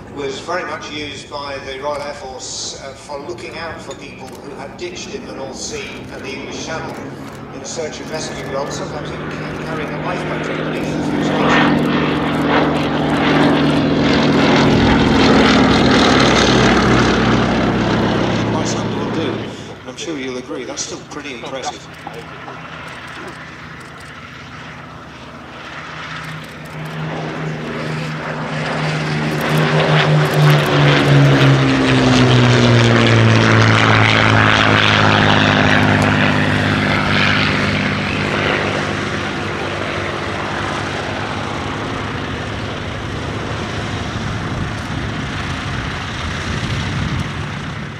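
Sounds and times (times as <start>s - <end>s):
propeller aircraft engine passing: 0.0s - 47.9s.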